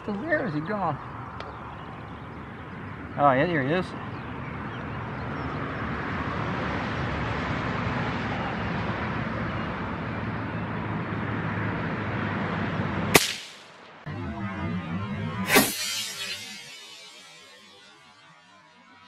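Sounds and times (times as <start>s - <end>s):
outdoor background noise: 0.0s - 19.0s
rifle shot: 13.2s - 13.8s.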